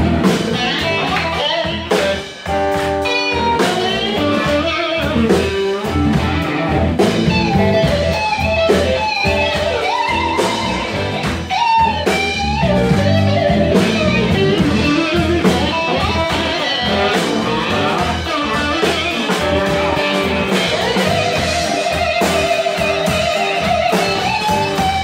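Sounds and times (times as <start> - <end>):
electric blues band playing: 0.0 - 25.0
lead guitar long held notes: 0.0 - 25.0.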